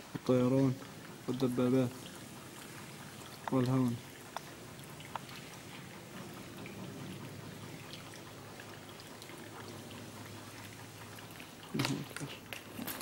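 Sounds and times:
steady background hiss: 0.0 - 13.0
faint clicks and ticks: 0.1 - 13.0.

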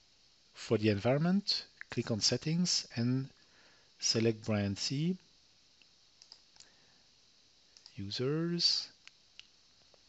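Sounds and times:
computer mouse clicks: 5.8 - 6.7, 7.8 - 8.0.

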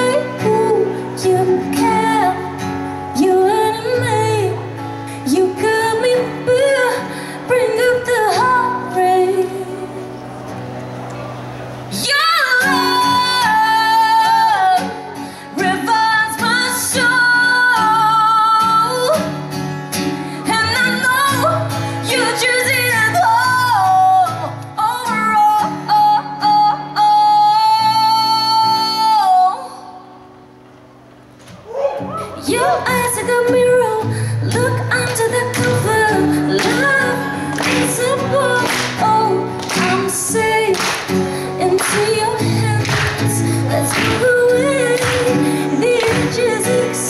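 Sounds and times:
woman singing into microphone: 0.0 - 10.2, 11.9 - 19.4, 20.3 - 30.1, 32.4 - 47.0
acoustic guitar: 0.0 - 47.0.

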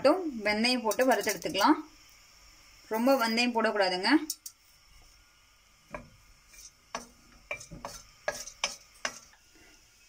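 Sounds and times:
spoon scraping metal pan: 6.4 - 9.4.

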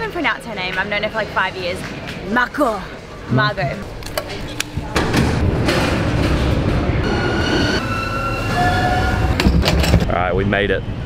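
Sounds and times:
train wheels rumbling on rails: 4.8 - 10.5.

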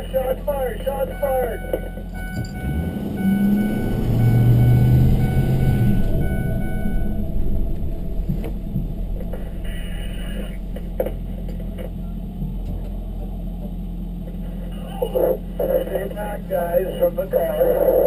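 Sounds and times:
engine rumble inside cab: 0.0 - 18.0.

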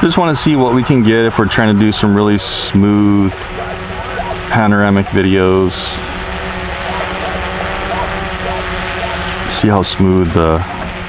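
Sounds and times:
drone propellers humming: 0.0 - 11.0.

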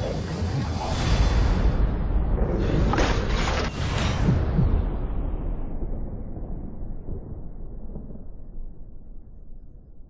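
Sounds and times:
deep rumble: 0.0 - 10.0.

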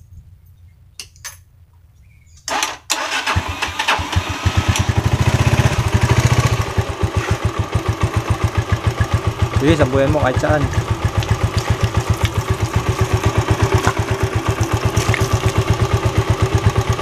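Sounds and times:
motorcycle engine starting and running: 2.5 - 17.0.

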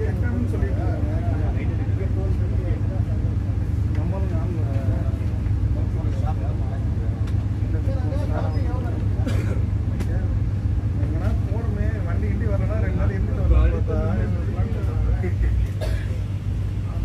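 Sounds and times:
indistinct passenger chatter: 0.0 - 17.0
train coach low rumble: 0.0 - 17.0.

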